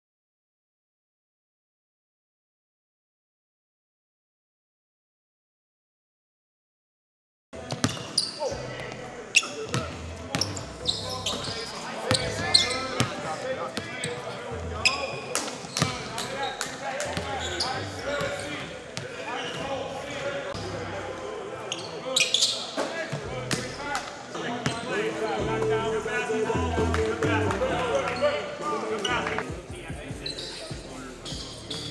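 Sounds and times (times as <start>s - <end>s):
sneaker squeaks: 7.6s - 8.6s, 9.3s - 20.7s, 21.6s - 24.0s, 24.6s - 25.0s, 30.2s - 31.9s
indistinct echoing voices: 7.6s - 31.9s.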